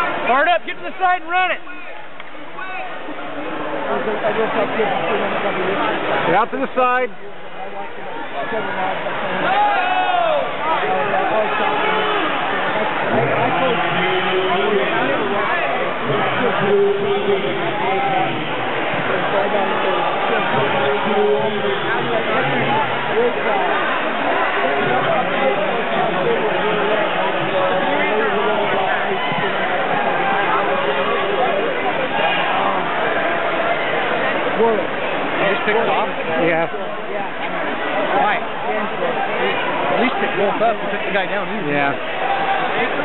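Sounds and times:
crowd babble in a hall: 0:00.0 - 0:43.0.

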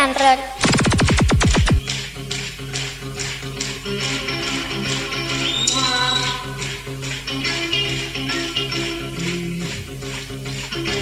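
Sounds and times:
held low notes: 0:06.3 - 0:11.0.

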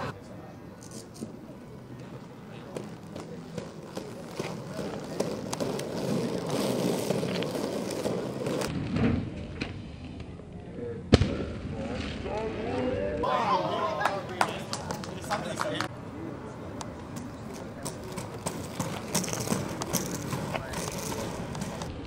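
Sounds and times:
voices and chatter: 0:00.0 - 0:08.7, 0:11.7 - 0:21.9
skate wheels rolling on asphalt: 0:00.0 - 0:10.8, 0:12.0 - 0:22.0.

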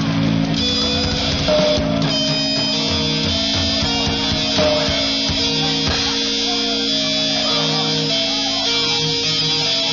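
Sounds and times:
amplifier buzz: 0:00.0 - 0:09.9
distorted electric guitars: 0:00.0 - 0:09.9.

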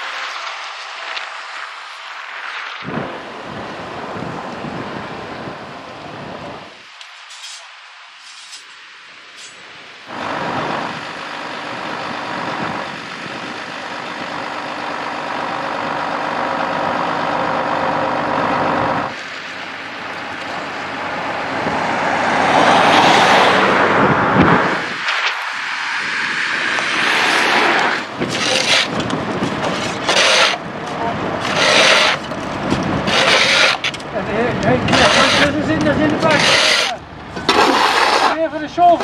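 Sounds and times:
diesel truck engine drone: 0:00.0 - 0:07.6, 0:08.2 - 0:39.0
tow truck engine approaching: 0:09.7 - 0:39.0.

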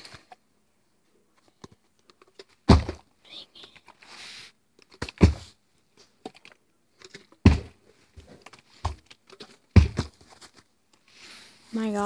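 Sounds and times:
plastic bottle thudding on carpet: 0:02.6 - 0:03.0, 0:05.0 - 0:05.5, 0:07.4 - 0:09.0, 0:09.7 - 0:10.4.

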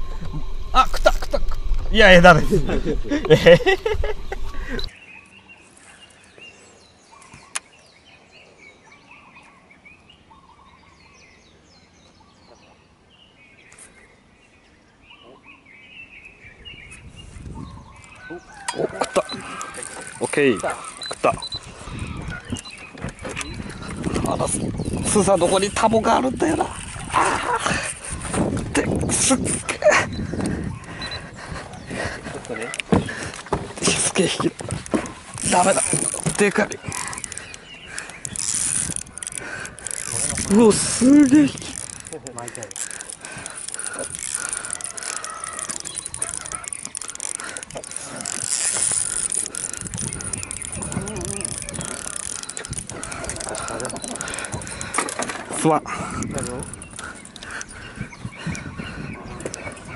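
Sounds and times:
low rumble: 0:00.0 - 0:04.9
birds chirping: 0:00.0 - 0:59.9
indistinct low voices: 0:48.0 - 0:54.9.

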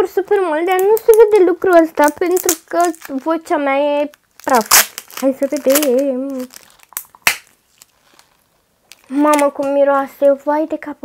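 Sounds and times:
plastic bottle snapping open: 0:04.4 - 0:07.9.

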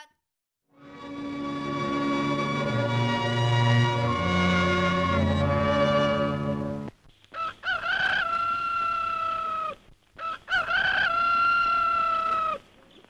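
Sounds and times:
music: 0:00.7 - 0:06.9
rooster crowing: 0:07.3 - 0:12.6.

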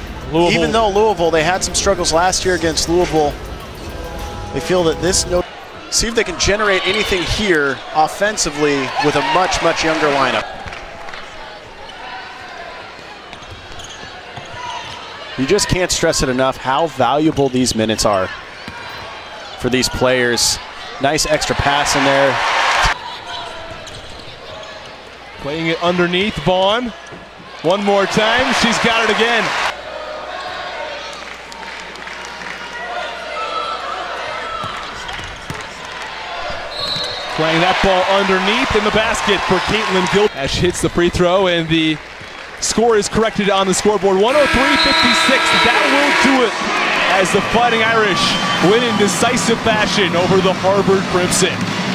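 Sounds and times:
arena crowd chatter: 0:00.0 - 0:42.0, 0:42.6 - 0:51.9
indistinct voices: 0:44.2 - 0:51.6.

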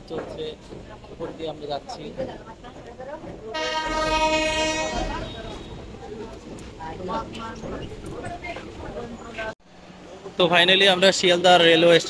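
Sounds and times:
train horn blast: 0:03.5 - 0:05.9.

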